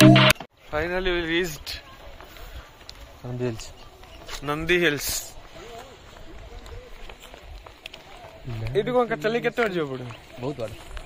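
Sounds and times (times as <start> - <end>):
footsteps on pavement: 0.5 - 11.0
faint voices talking: 0.8 - 11.0.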